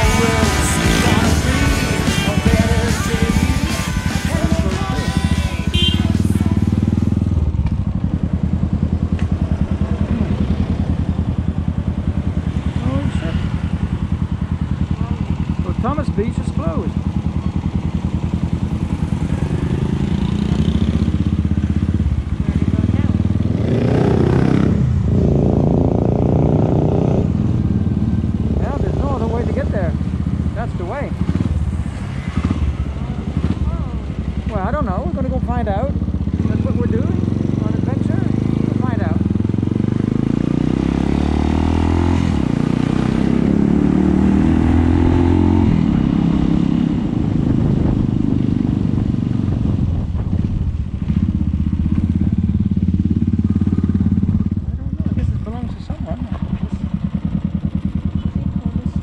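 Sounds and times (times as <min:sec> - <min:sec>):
motorcycle engine accelerating: 0:00.0 - 0:59.0
wind and road noise: 0:00.0 - 0:59.0.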